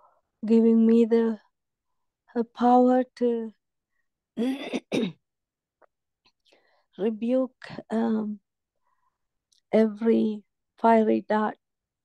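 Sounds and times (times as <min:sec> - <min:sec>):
woman clearing her throat: 0:04.4 - 0:05.2.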